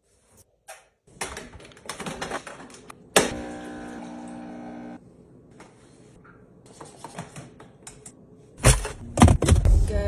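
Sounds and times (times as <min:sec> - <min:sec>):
kitchen appliance humming: 0:03.2 - 0:05.0.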